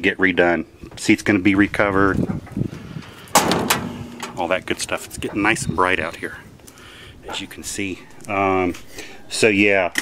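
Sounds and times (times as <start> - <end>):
truck door slamming: 3.3 - 5.4.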